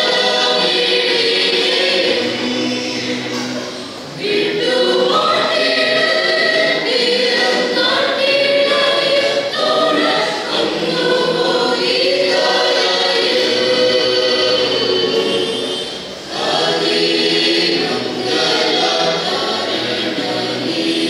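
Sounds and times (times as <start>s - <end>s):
church choir singing a carol: 0.0s - 21.0s.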